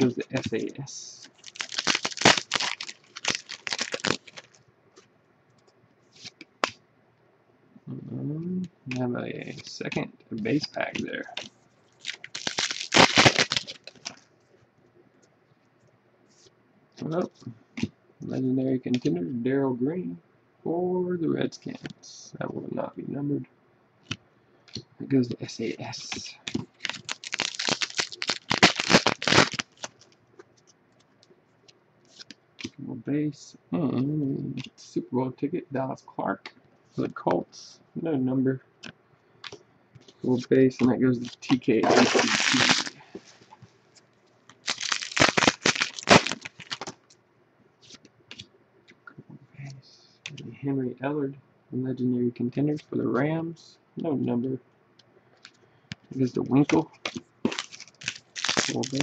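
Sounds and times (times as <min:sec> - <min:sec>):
cards ticking: 0:00.0 - 0:04.6, 0:08.9 - 0:14.2, 0:25.7 - 0:30.1, 0:55.9 - 0:59.0
foil wrapper crinkling: 0:01.2 - 0:04.6, 0:10.6 - 0:14.3, 0:25.6 - 0:30.2, 0:41.2 - 0:43.5, 0:44.5 - 0:47.2, 0:56.8 - 0:59.0.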